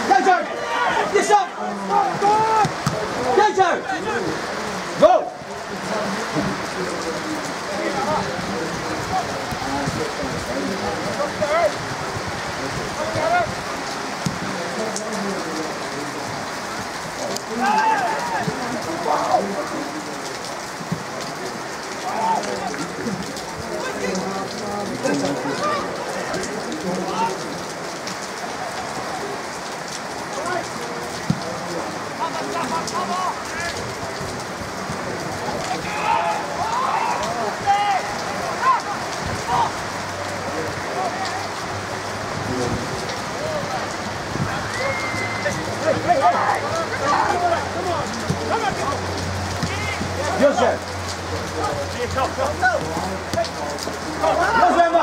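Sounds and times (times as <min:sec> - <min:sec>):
steady rain: 0:00.0 - 0:55.0
voices calling out: 0:00.0 - 0:55.0.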